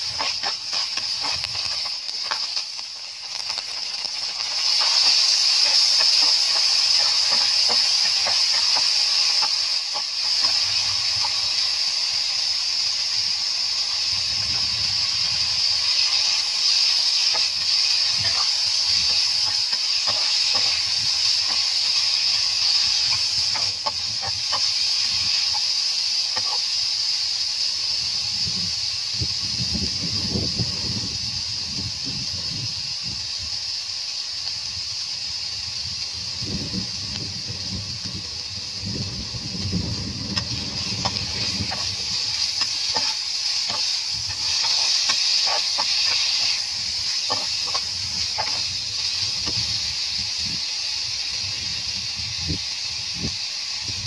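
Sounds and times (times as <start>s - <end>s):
oil sizzling in frying pan: 0.0s - 54.0s
spatula scraping pan: 40.4s - 48.6s.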